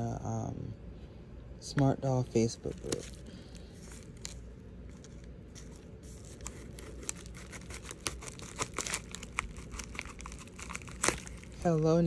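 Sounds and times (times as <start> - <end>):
envelope crinkling: 2.6 - 12.0.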